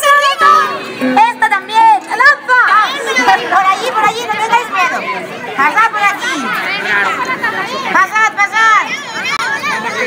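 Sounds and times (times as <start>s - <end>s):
children chattering: 0.0s - 10.0s.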